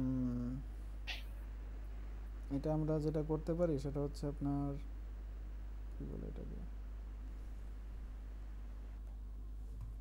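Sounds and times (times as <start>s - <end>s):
man humming: 0.0s - 0.7s
steady low hum: 0.0s - 10.0s.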